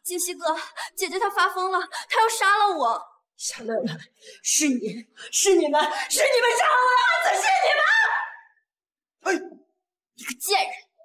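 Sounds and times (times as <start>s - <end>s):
woman shouting: 6.2s - 8.5s.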